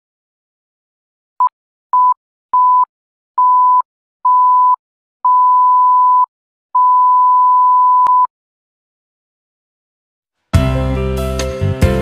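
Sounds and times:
electronic beep tone: 2.0s - 8.3s.

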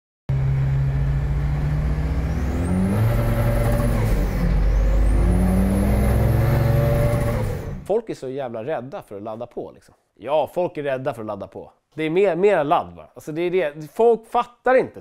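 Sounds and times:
car engine accelerating: 0.3s - 7.9s.

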